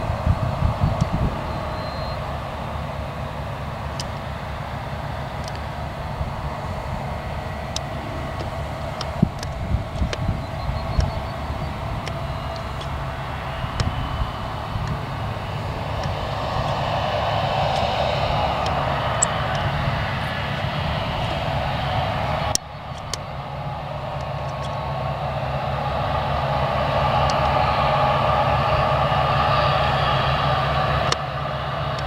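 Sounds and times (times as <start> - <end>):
combine harvester engine running: 0.0 - 32.0
rushing noise: 0.0 - 32.0
tractor engine running: 0.0 - 32.0.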